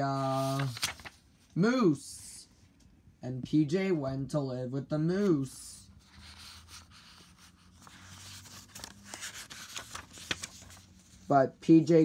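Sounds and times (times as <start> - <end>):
paper pages rustling: 0.2 - 1.5, 5.9 - 11.3.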